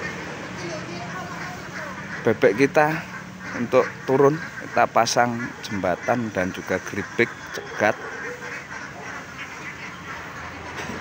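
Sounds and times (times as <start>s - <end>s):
ducks quacking: 0.0s - 11.0s.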